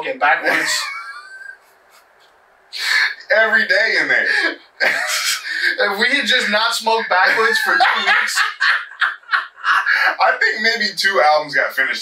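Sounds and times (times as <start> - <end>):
man laughing: 0.4 - 2.0, 4.2 - 5.8, 7.1 - 10.4.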